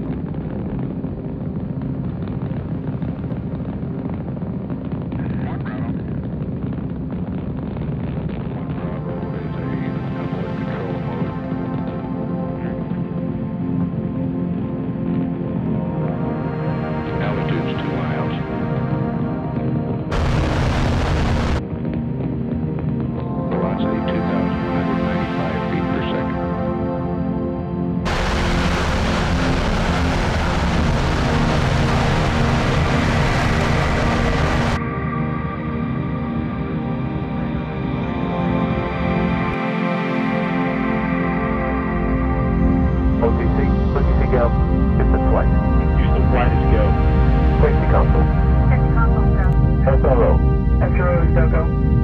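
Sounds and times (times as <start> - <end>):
sustained music tones: 8.6 - 52.0
rocket engines rumbling: 20.1 - 21.6, 28.1 - 34.8.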